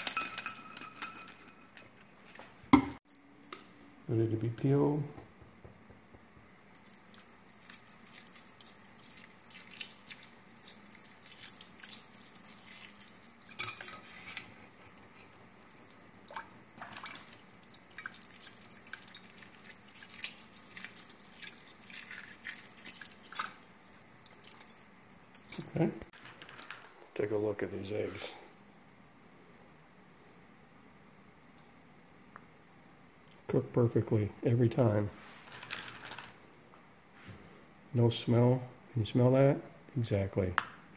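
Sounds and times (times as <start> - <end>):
eggshell crackling: 6.2 - 26.4.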